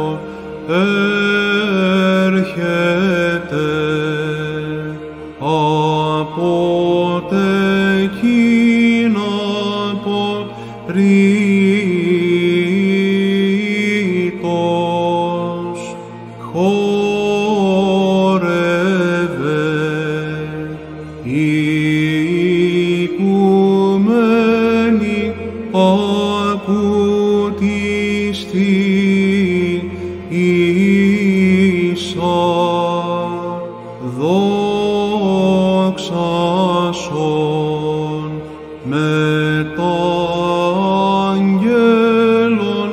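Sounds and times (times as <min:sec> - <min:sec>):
man singing chant: 0:00.0 - 0:42.9.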